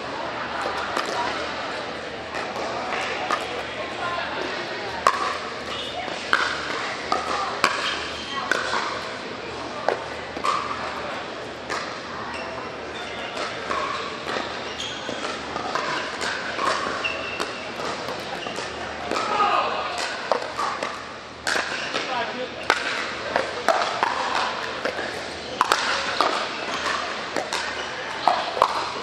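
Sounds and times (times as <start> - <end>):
indistinct echoing voices: 0.0 - 29.0
paddles hitting plastic ball: 0.6 - 1.4, 2.3 - 3.7, 4.9 - 9.1, 9.8 - 11.0, 11.6 - 12.0, 13.3 - 29.0.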